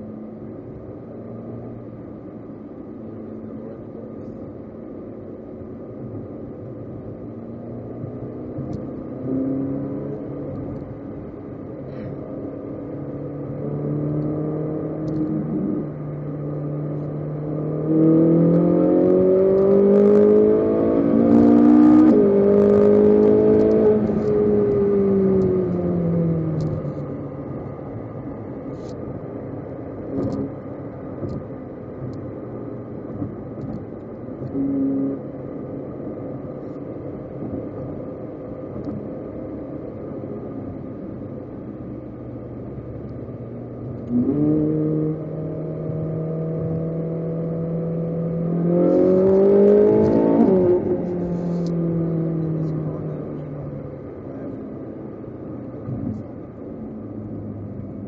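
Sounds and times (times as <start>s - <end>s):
sports car engine accelerating: 0.0s - 58.0s.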